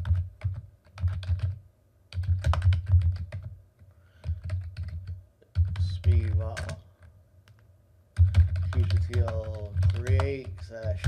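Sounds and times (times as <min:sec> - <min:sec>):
typing on computer keyboard: 0:00.0 - 0:03.5, 0:04.2 - 0:07.6, 0:08.2 - 0:11.0.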